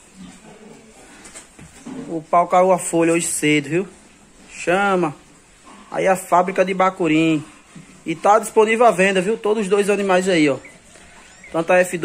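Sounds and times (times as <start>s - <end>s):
pigs grunting: 0.0s - 1.2s, 5.4s - 12.0s.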